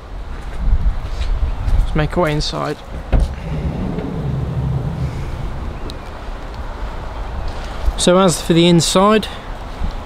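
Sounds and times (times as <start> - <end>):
wind on microphone: 2.9 - 8.1
sliding door rumbling: 3.0 - 7.6.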